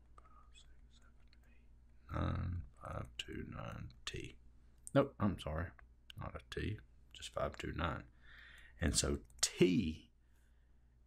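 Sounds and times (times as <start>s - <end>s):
low steady hum: 0.0s - 11.0s
murmured voice: 2.1s - 3.8s.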